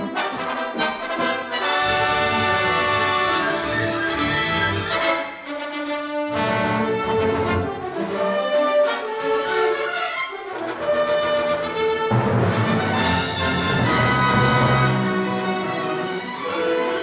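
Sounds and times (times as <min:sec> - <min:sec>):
orchestra playing tense film music: 0:00.0 - 0:17.0.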